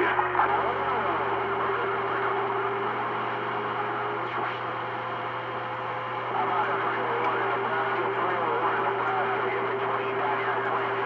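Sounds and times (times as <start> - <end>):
low hum: 0.0 - 11.0
radio static hiss: 0.0 - 11.0.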